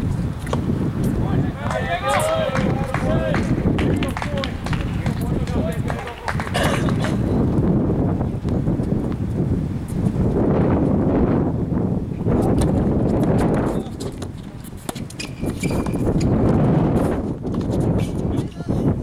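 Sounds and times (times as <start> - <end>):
players talking: 1.2 - 7.4
tennis balls bouncing: 1.5 - 7.3.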